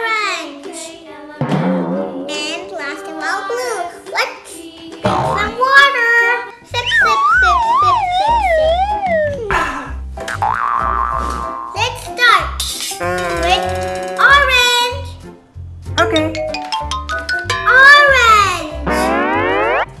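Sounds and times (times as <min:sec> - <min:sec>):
children's background music: 0:00.0 - 0:20.0
wobbling tone sliding downward: 0:06.8 - 0:09.5, 0:18.9 - 0:20.0
swooping cartoon tones: 0:06.8 - 0:09.6, 0:18.9 - 0:20.0
steady low beat: 0:06.8 - 0:09.8, 0:18.8 - 0:20.0.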